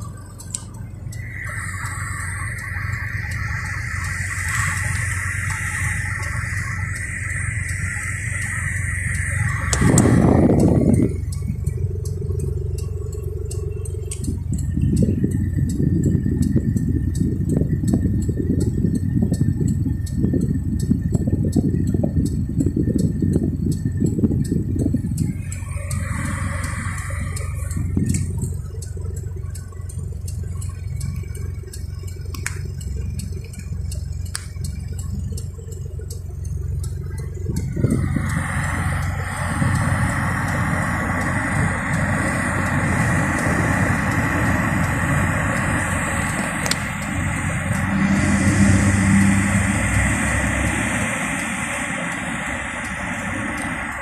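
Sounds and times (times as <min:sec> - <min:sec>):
engine and road rumble: 0:00.0 - 0:54.0
light ticks: 0:00.0 - 0:54.0.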